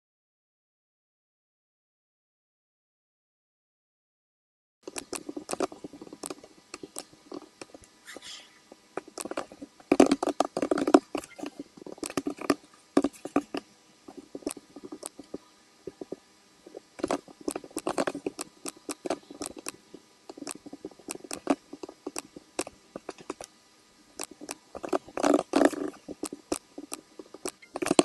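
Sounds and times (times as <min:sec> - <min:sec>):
computer mouse clicks: 0:04.8 - 0:08.0, 0:09.0 - 0:23.5, 0:24.2 - 0:28.0.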